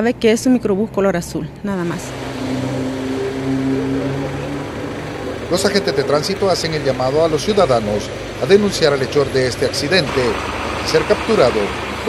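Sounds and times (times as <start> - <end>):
street background noise: 0.0 - 12.0
vehicle engine idling: 0.0 - 12.0.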